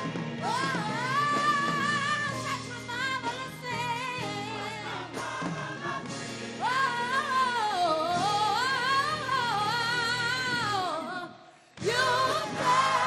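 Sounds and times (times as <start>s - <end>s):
gospel choir singing: 0.0s - 13.0s
woman singing lead: 0.4s - 5.8s, 6.6s - 13.0s.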